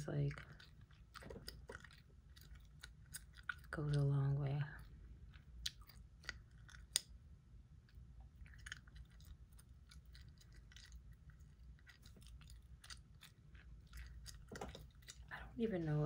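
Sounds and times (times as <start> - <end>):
gum chewing clicks and smacks: 0.0 - 7.2, 7.8 - 15.6.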